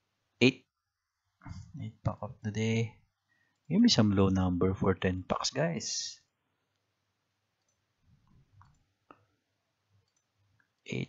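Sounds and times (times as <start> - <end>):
faint computer mouse clicks: 10.0 - 10.3.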